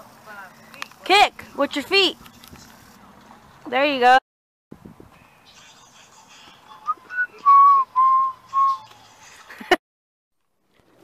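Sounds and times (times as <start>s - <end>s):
faint outdoor background: 0.0s - 9.8s, 10.4s - 11.0s
person whistling notes: 6.7s - 9.0s.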